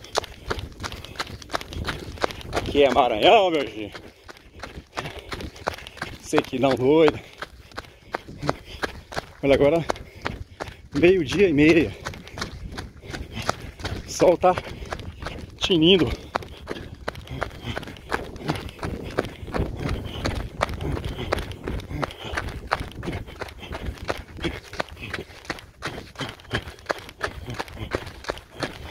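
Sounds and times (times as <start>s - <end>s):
running sandal footsteps on dirt: 0.0s - 28.9s.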